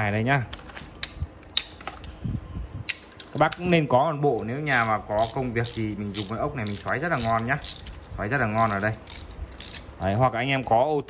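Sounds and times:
metal clicks of socket set: 4.8 - 8.0.

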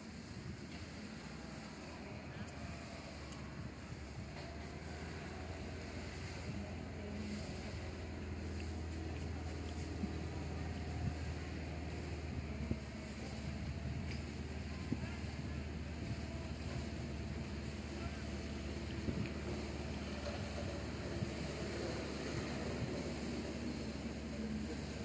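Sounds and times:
outdoor background noise: 0.0 - 25.0.

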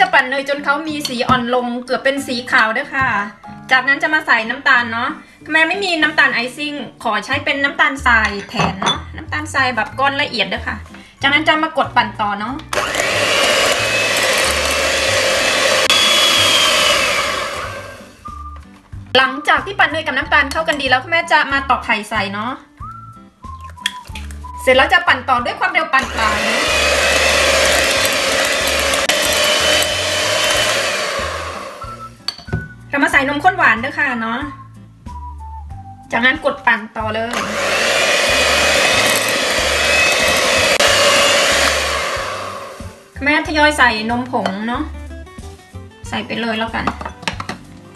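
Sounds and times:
electric hand mixer whirring: 12.7 - 18.3, 26.0 - 32.2, 37.3 - 43.2.

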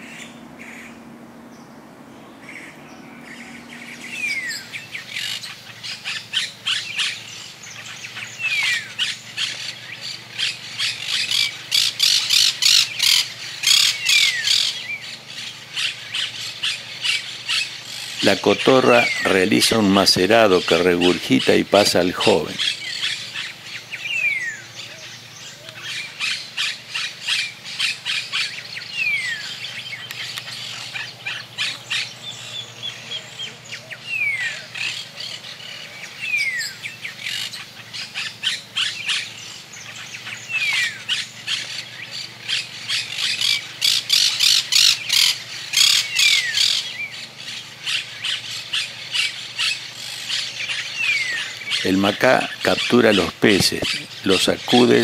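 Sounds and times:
parakeets squawking chatter: 0.0 - 55.0.

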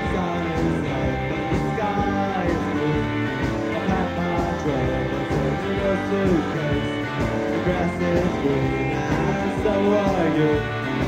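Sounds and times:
drum beat: 0.0 - 11.0
guitars: 0.0 - 11.0.

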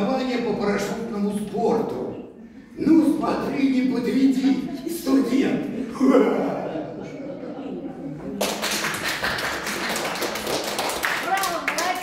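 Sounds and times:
audience applauding: 8.4 - 12.0
voices over clapping: 8.4 - 12.0.

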